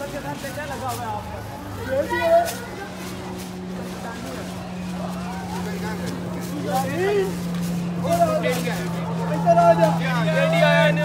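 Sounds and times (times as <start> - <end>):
faint distant voices talking: 0.0 - 11.0.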